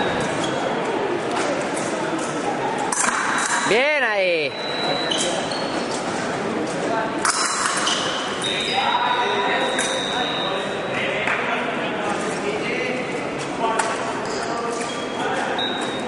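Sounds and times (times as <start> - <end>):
murmur in echoing hall: 0.0 - 16.0.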